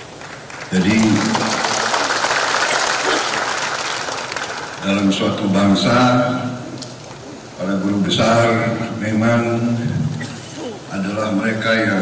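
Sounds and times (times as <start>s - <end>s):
audience applauding: 0.0s - 5.1s.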